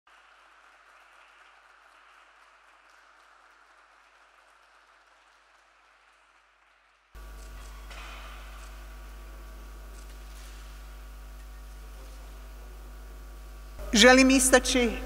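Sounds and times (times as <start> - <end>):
faint applause: 0.1 - 7.1
low electrical hum: 7.2 - 15.0.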